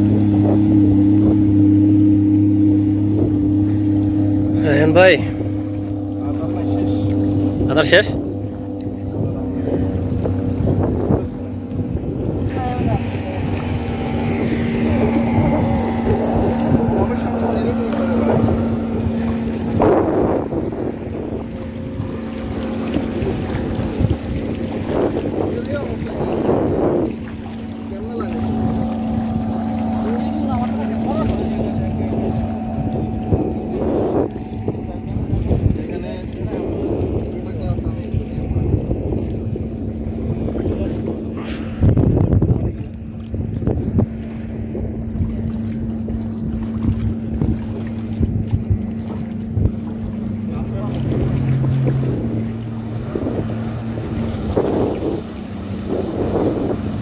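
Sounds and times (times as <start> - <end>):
boat engine drone: 0.0 - 57.0
sea wash: 0.0 - 57.0
wind: 0.0 - 57.0.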